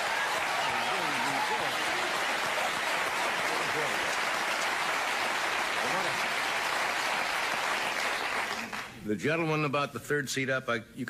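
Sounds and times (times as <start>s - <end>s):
studio audience applauding: 0.0s - 9.0s.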